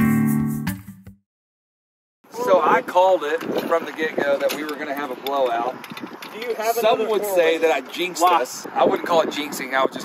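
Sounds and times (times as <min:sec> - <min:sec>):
people talking: 0:02.3 - 0:10.0.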